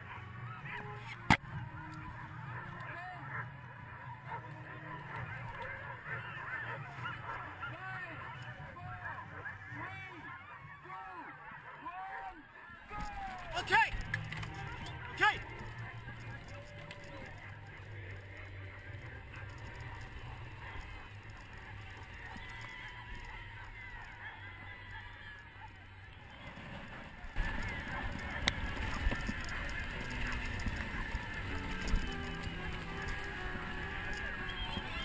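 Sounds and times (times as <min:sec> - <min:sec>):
sled dogs yelping and barking: 0:00.0 - 0:35.0.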